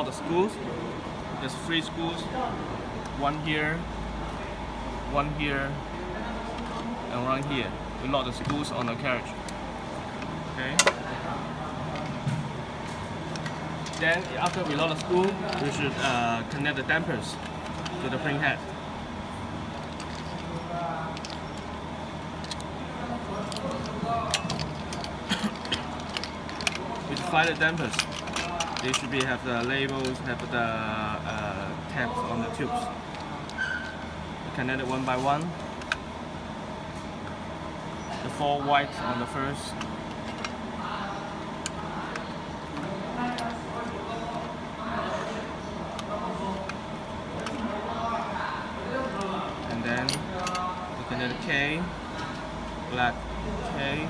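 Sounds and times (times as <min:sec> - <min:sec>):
faint voices talking: 0:00.0 - 0:35.8, 0:36.5 - 0:54.0
steady background hum: 0:00.0 - 0:54.0.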